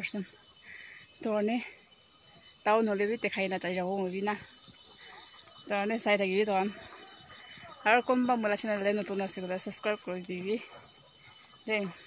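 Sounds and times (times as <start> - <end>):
woman speaking: 0.0 - 0.3, 1.2 - 1.7, 2.7 - 4.5, 5.7 - 6.9, 7.6 - 10.7, 11.7 - 12.0
high-pitched insect drone: 0.0 - 12.0.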